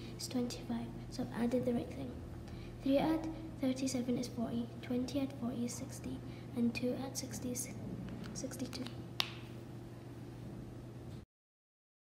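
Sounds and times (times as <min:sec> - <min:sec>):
low room tone hum: 0:00.0 - 0:11.3.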